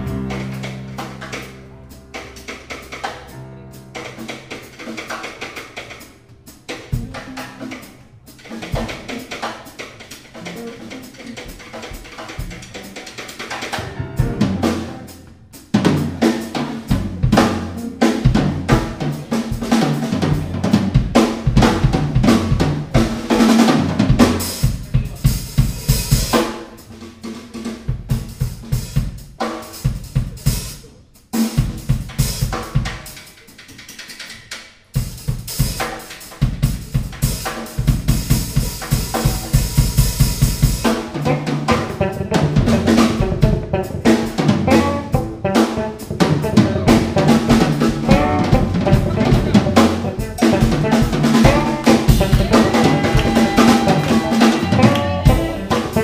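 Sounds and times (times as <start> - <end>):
drum kit: 0.0 - 56.0
jazz band playing: 0.0 - 56.0.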